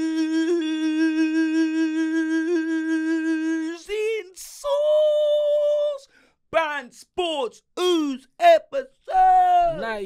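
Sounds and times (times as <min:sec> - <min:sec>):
man singing long note: 0:00.0 - 0:04.1.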